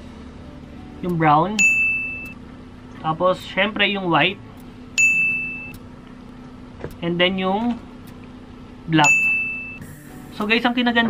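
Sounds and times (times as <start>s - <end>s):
bell-like ding: 1.6s - 2.4s, 5.0s - 5.7s, 9.0s - 9.8s.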